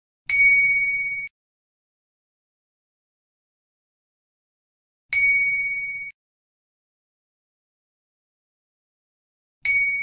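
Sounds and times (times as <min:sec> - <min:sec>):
bell-like ding: 0:00.3 - 0:01.3, 0:05.1 - 0:06.2, 0:09.7 - 0:10.0.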